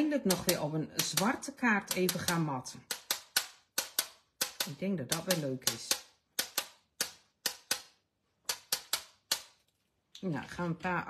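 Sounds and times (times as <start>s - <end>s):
marker tapping clicks: 0.0s - 9.6s.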